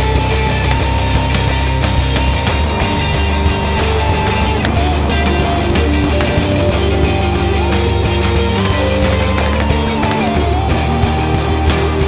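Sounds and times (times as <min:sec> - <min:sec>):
drum kit: 0:00.0 - 0:12.0
electric guitar held notes: 0:00.0 - 0:12.0.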